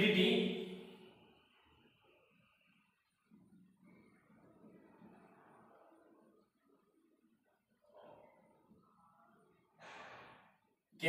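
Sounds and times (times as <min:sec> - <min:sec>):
soft sigh-like exhale: 0:09.8 - 0:10.5.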